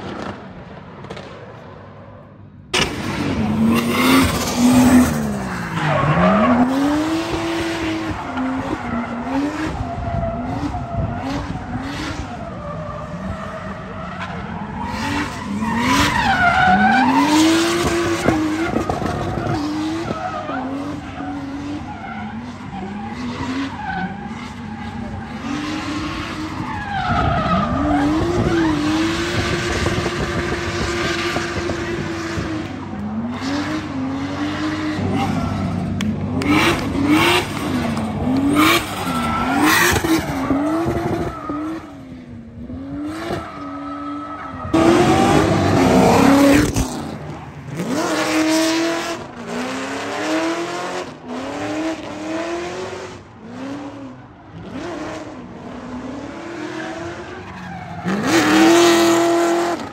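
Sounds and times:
car engine revving hard: 0:27.7 - 0:41.9, 0:44.7 - 0:57.2, 0:58.0 - 0:59.9.

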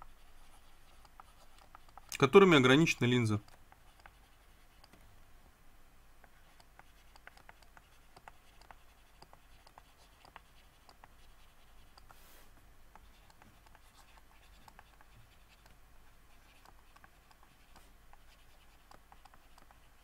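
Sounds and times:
stylus tapping on graphics tablet: 0:00.8 - 0:02.5, 0:03.4 - 0:05.0, 0:06.2 - 0:12.1, 0:12.9 - 0:15.8, 0:16.4 - 0:20.0.

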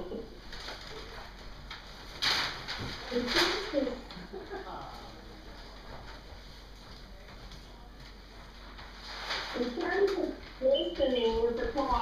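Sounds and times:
paper sheet rustling: 0:00.5 - 0:04.2, 0:05.0 - 0:12.0.

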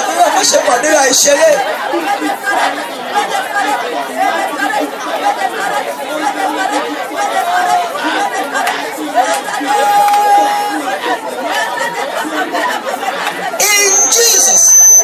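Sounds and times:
congregation praying aloud: 0:00.0 - 0:15.0
single loud voice: 0:13.5 - 0:15.0.

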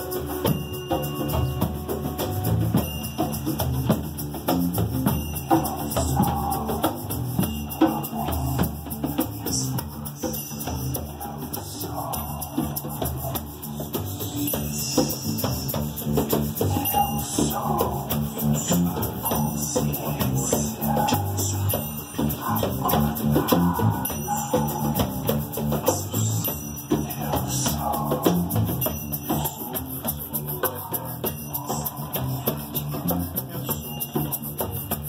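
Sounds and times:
guitar: 0:00.0 - 0:35.0
hand drums: 0:00.0 - 0:35.0
wooden shakers: 0:00.0 - 0:35.0.

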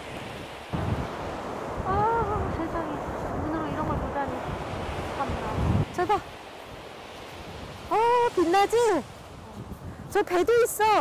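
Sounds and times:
surf washing on a beach: 0:00.0 - 0:11.0
wind buffeting microphone: 0:00.0 - 0:11.0.

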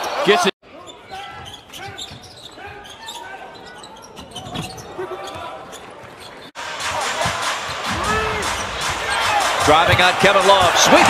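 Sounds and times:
voices in arena: 0:00.0 - 0:11.0.

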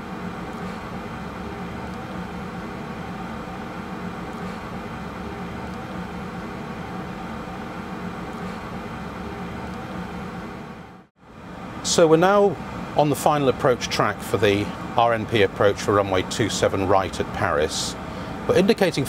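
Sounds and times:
aircraft cockpit hum: 0:00.0 - 0:18.7.

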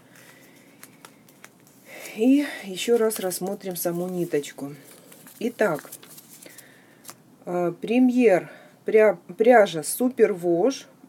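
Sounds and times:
paper label peeling rustle: 0:02.9 - 0:07.2.

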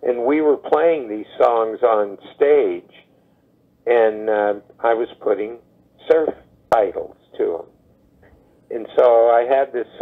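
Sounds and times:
man talking over telephone: 0:03.9 - 0:07.7, 0:08.7 - 0:10.0.

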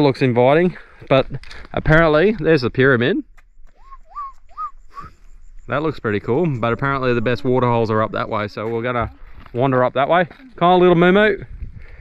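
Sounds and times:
bird whistling rising notes: 0:03.5 - 0:05.8.

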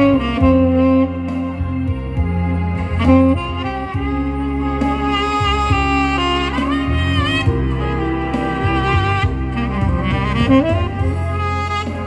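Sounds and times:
recorded backing track with bass: 0:00.0 - 0:12.0
saxophone melody: 0:00.0 - 0:12.0.

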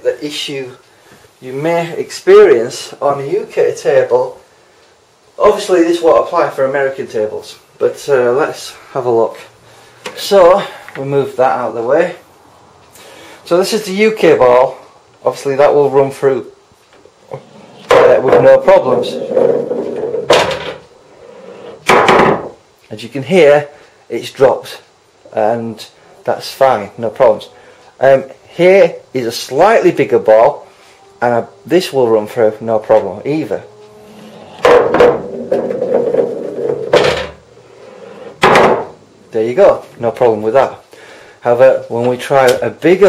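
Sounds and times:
pool ball rolling rumble: 0:17.2 - 0:22.6, 0:32.0 - 0:39.4
ball knocking in return channel: 0:34.6 - 0:37.4
ball dropping knocks: 0:38.4 - 0:39.0.

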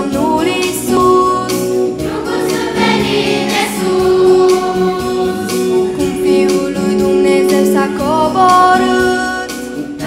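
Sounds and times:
children's choir singing a carol: 0:00.0 - 0:08.0.

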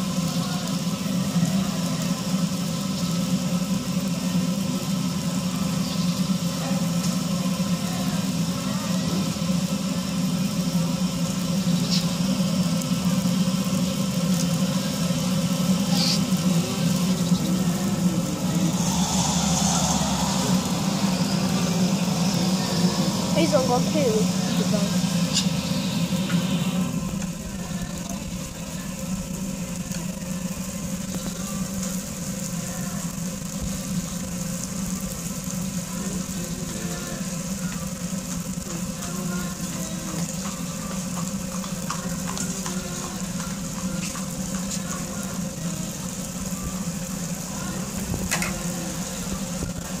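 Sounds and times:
dough sizzling in frying oil: 0:00.0 - 0:50.0
steady low hum: 0:03.0 - 0:37.8.

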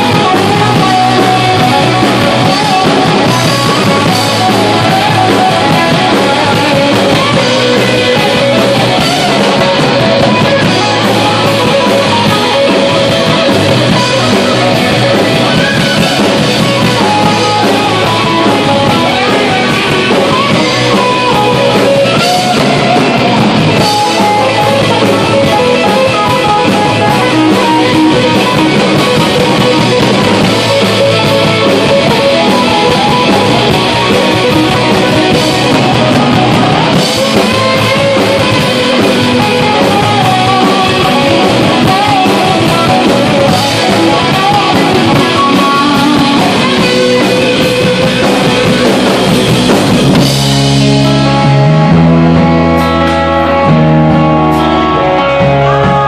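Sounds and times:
bass guitar: 0:00.0 - 0:56.0
drum kit: 0:00.0 - 0:56.0
electric guitar: 0:00.0 - 0:56.0
rock band playing: 0:00.0 - 0:56.0.

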